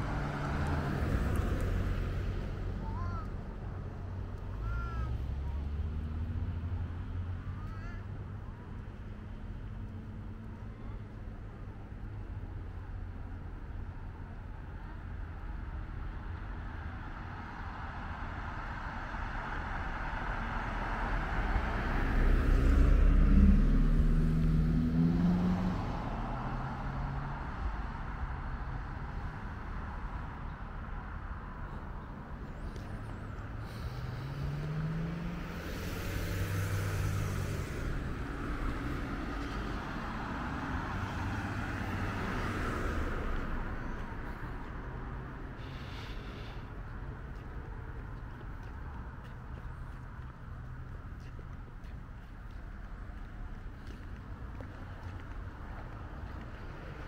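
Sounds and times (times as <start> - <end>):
cars driving past: 0.0 - 57.0
steady traffic rumble: 0.0 - 57.0.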